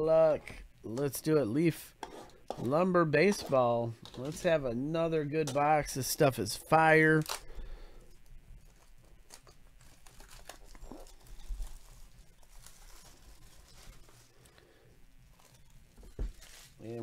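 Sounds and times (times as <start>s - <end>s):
plastic wrap tearing and crinkling: 7.1s - 7.5s, 8.6s - 14.6s, 15.2s - 17.0s.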